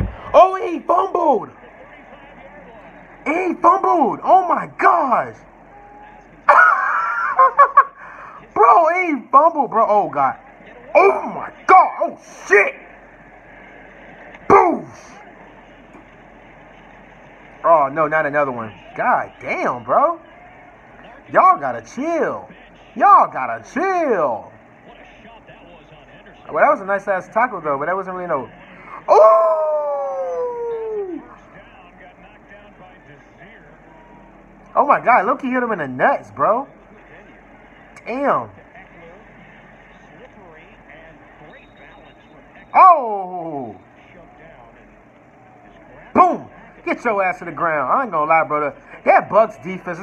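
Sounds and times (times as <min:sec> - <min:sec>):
commentator talking: 0:00.0 - 0:05.5, 0:07.8 - 0:12.9, 0:14.5 - 0:15.2, 0:17.6 - 0:20.2, 0:21.0 - 0:33.9, 0:34.7 - 0:39.3, 0:40.1 - 0:45.0, 0:45.8 - 0:50.0
game crowd noise: 0:00.0 - 0:50.0
low steady background noise: 0:00.0 - 0:50.0
man shouting: 0:00.4 - 0:01.4, 0:03.3 - 0:07.8, 0:11.0 - 0:12.8, 0:14.5 - 0:15.2, 0:29.0 - 0:31.4, 0:42.8 - 0:43.8, 0:46.2 - 0:46.5.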